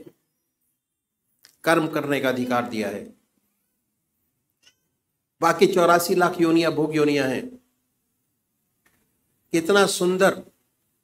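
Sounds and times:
man speaking: 1.6 - 3.2, 5.4 - 7.6, 9.5 - 10.6.

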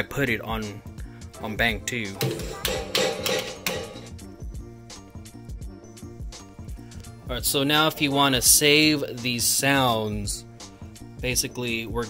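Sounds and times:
drum machine beat: 2.2 - 4.2.

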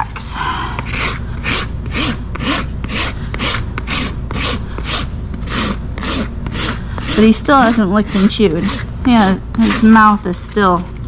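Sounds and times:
hoof rasp filing hoof: 0.8 - 10.8.

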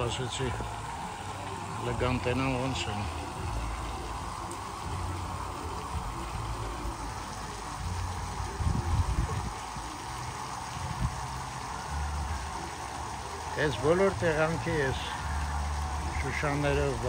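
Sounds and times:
water running into pond: 0.0 - 17.0.

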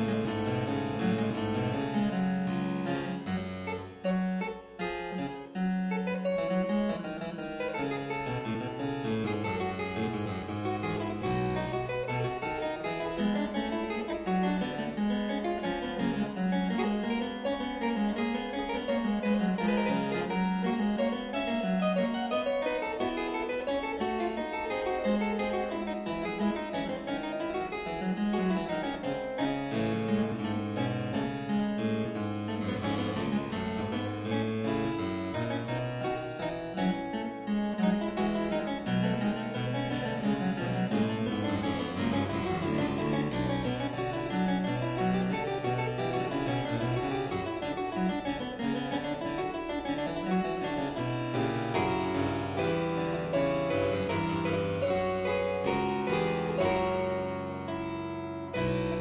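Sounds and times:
harpsichord quick running figures: 31.8 - 57.1.

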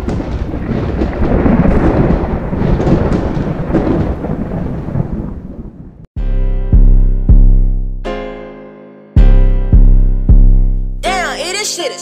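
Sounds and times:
heavy thunder rumbling: 0.0 - 6.1
rain: 0.0 - 6.1.

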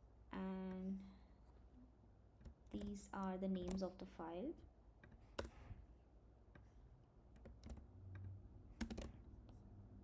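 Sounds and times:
typing on computer keyboard: 7.3 - 9.2.

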